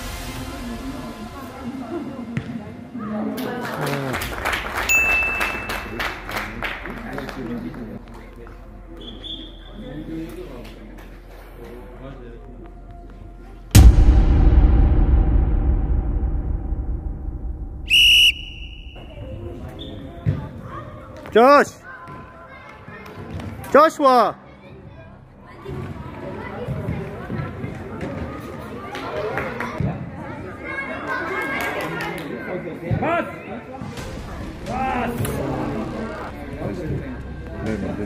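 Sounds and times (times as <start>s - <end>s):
background music: 0.0s - 9.0s, 33.9s - 38.0s
sharp claps: 4.1s - 7.4s
steady high tone: 13.8s - 19.6s
deep low rumble: 13.8s - 19.7s
whistle blast: 17.5s - 20.0s.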